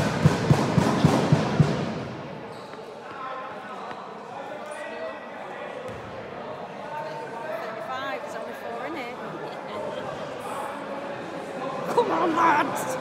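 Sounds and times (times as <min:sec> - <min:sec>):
murmur of voices: 0:00.0 - 0:13.0.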